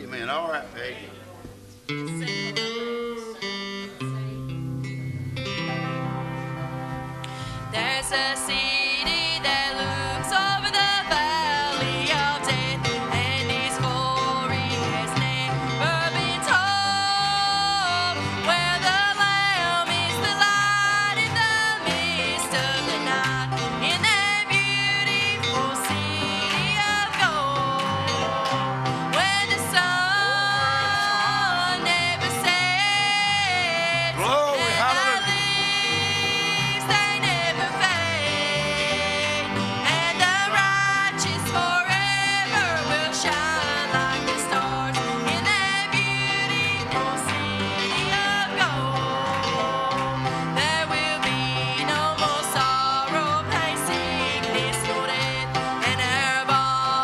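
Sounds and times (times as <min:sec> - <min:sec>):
acoustic stringed instruments: 0:00.0 - 0:57.0
guitars playing: 0:00.0 - 0:57.0
fiddle playing: 0:02.0 - 0:57.0
women singing gospel song: 0:07.7 - 0:57.0.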